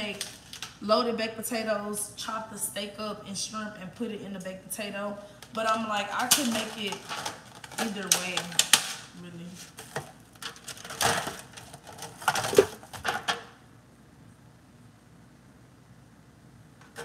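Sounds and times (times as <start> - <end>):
clicks knocks and rustles: 9.7 - 13.5.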